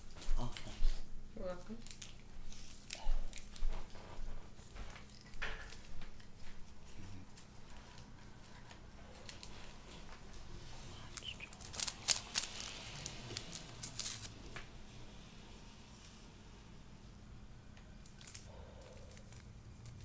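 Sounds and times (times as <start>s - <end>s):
objects rustling and crinkling: 0.0s - 15.0s, 17.8s - 20.0s.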